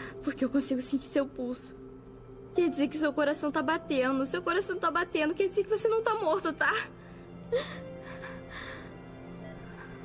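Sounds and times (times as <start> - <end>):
soft background music: 0.0 - 10.0
girl sobbing: 7.5 - 10.0.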